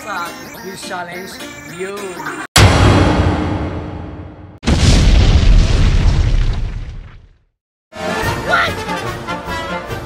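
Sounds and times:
deep rumbling explosion boom: 2.6s - 7.3s.

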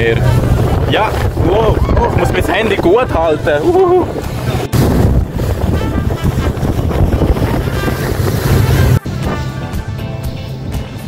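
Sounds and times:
wind buffeting microphone: 0.0s - 9.4s
water rushing along boat hull: 0.0s - 10.0s
music: 0.0s - 11.0s.

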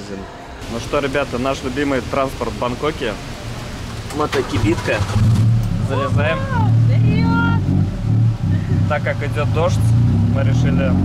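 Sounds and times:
auto-rickshaw engine droning: 0.6s - 11.0s.

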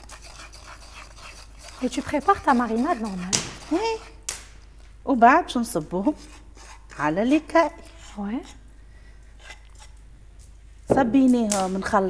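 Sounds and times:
wooden spoon scraping clay bowl: 0.0s - 4.3s, 5.6s - 8.7s, 9.3s - 10.0s, 10.9s - 12.0s
woman speaking: 1.8s - 4.2s, 5.1s - 6.3s, 7.0s - 8.6s, 10.9s - 12.0s.

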